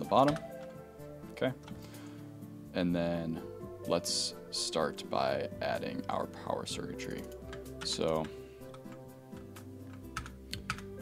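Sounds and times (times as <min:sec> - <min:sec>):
soft background music: 0:00.0 - 0:11.0
keyboard typing: 0:07.2 - 0:11.0.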